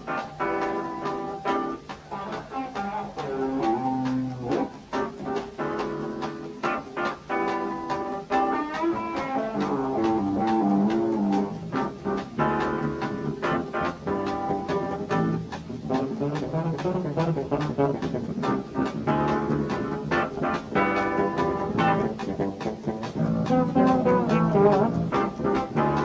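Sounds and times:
drums keeping steady beat: 0.0 - 26.0
keyboards playing fast run: 4.9 - 26.0
electric bass: 7.3 - 26.0.

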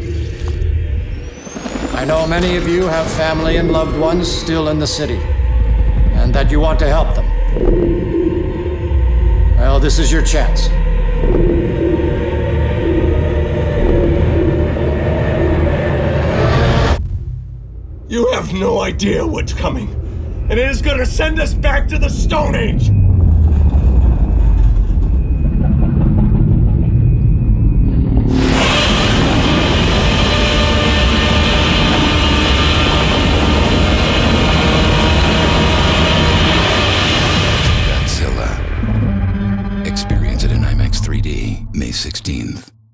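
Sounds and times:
deep loud rumble: 0.0 - 17.2, 19.1 - 42.4
low repeating droning tone: 0.0 - 18.1, 19.5 - 42.9.

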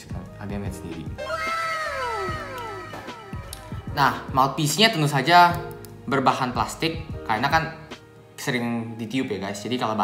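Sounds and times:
background music: 0.0 - 10.0
drawn-out pitched cry: 1.2 - 3.5.

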